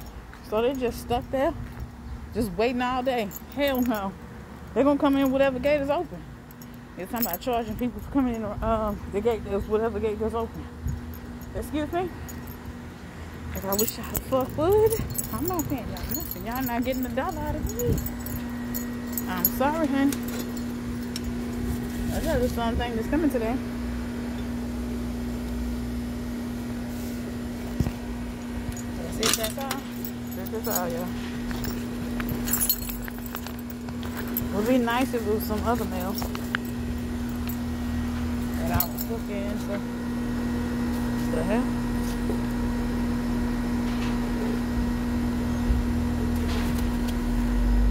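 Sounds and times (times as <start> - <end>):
low mechanical hum: 0.0 - 47.9.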